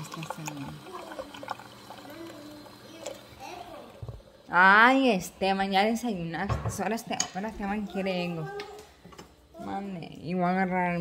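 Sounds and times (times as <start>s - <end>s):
faint child's voice: 0.8s - 4.0s, 8.3s - 9.8s.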